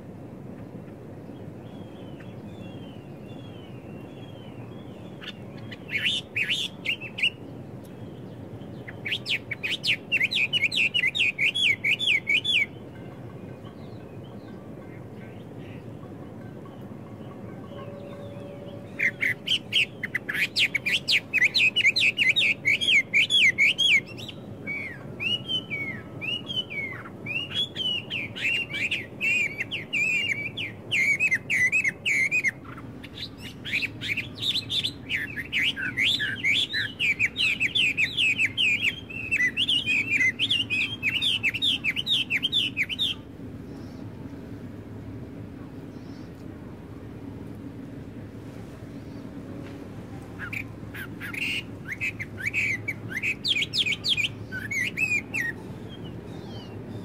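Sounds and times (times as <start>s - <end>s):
faint low background hum: 0.0s - 57.0s
songbirds chirping and trilling: 0.0s - 57.0s.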